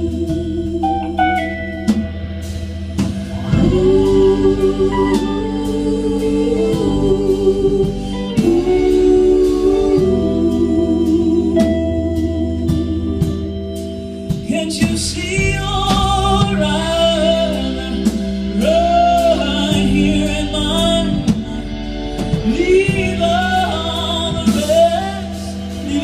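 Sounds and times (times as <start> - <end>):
guitar: 0.0 - 26.0
organ sustained chords: 0.0 - 26.0.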